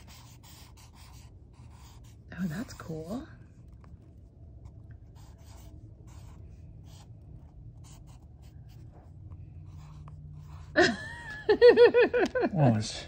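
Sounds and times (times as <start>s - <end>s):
marker drawing on paper: 0.0s - 10.8s.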